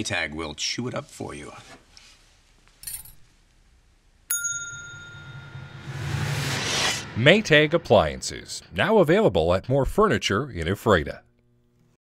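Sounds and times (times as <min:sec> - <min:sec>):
bright bell ding: 0:04.3 - 0:05.8
low hum: 0:04.6 - 0:10.2.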